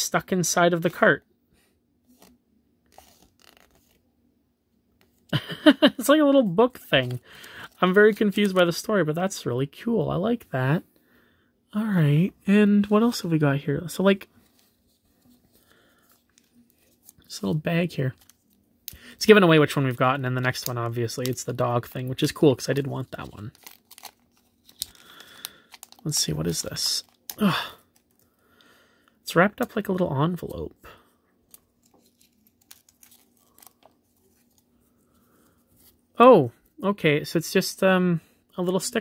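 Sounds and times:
paper envelope crackling and tearing: 2.1 - 4.0, 20.5 - 28.2, 31.5 - 34.7
plastic packet crinkling: 20.4 - 28.3, 31.4 - 34.7.

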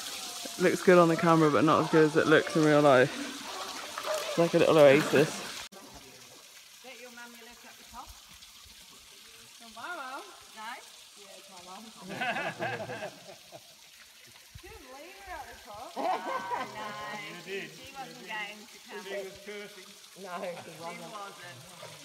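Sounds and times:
people talking and calling: 0.0 - 6.3
trickling water: 0.0 - 22.0.

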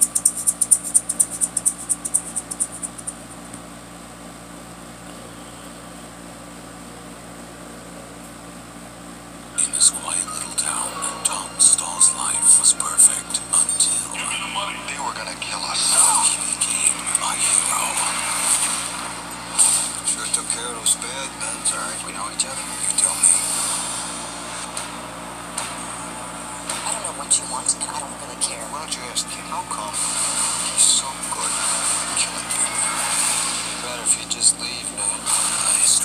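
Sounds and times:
trailer soundtrack from small speaker: 9.5 - 36.0
indistinct voices: 9.6 - 23.8, 26.6 - 36.0.

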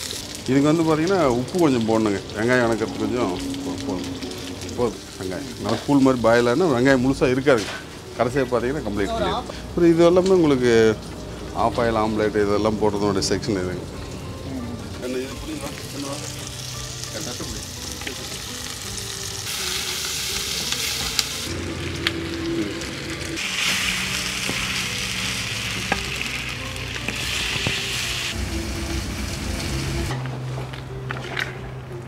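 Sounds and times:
meat sizzling in a pot: 0.0 - 30.1.

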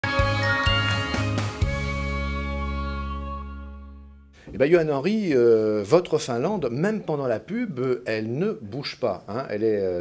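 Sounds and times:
television jingle with chiming notes: 0.0 - 2.7.

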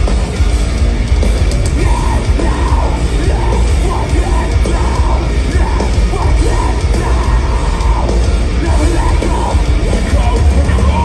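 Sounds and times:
heavy bass and drums: 0.0 - 11.0
metalcore band playing loud: 0.0 - 11.0.

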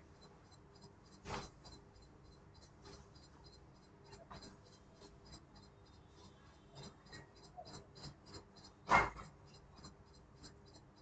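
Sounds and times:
faint high ticking: 0.0 - 11.0.

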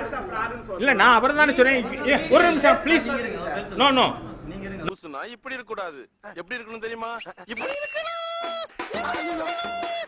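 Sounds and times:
high-pitched cries: 7.5 - 10.0.

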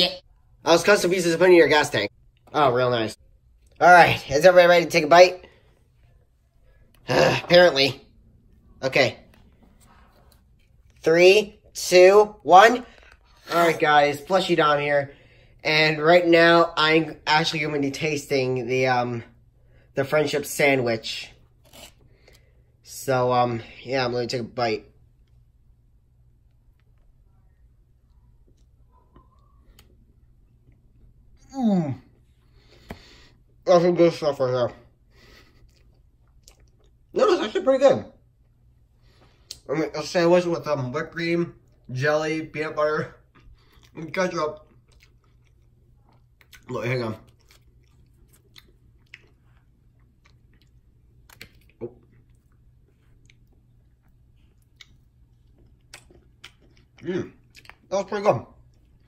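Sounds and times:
person chewing with wet mouth clicks: 47.3 - 57.9.

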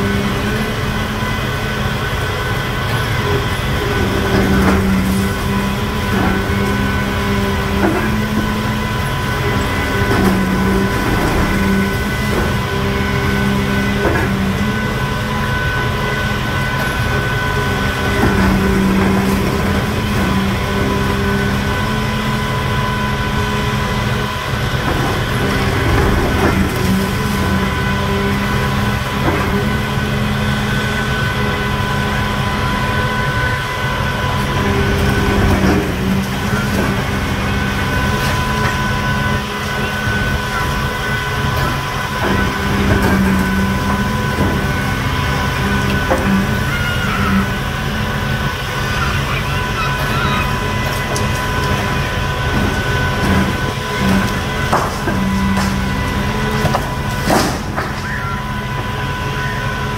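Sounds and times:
excavator engine and hydraulics: 0.0 - 59.9.

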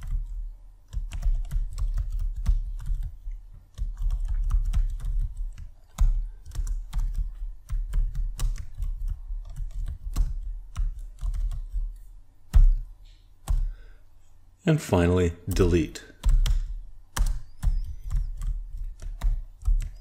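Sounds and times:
computer keyboard typing: 0.0 - 13.9, 15.5 - 20.0.

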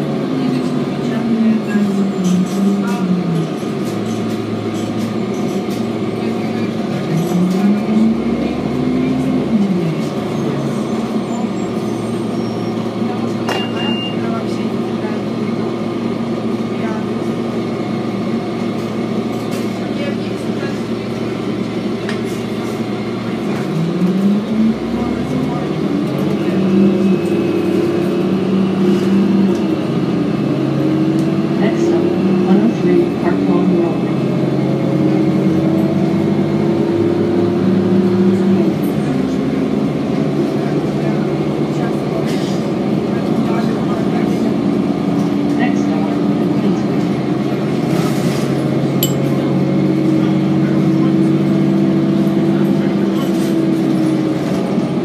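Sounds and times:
diesel bus engine: 0.0 - 55.0.

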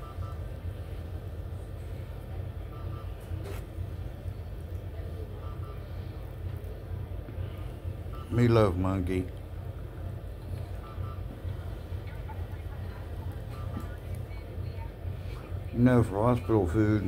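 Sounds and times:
faint double beep: 0.0 - 0.8, 2.4 - 3.6, 5.2 - 6.2, 8.0 - 8.8, 10.5 - 12.4, 13.1 - 17.0
low equipment hum: 0.0 - 17.0.

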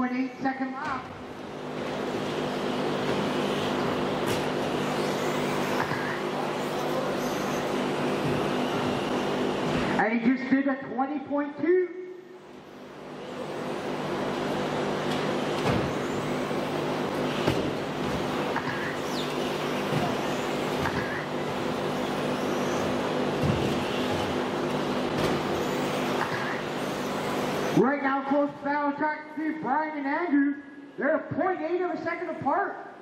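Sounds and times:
electric motor whine: 2.1 - 9.9, 12.6 - 27.8.

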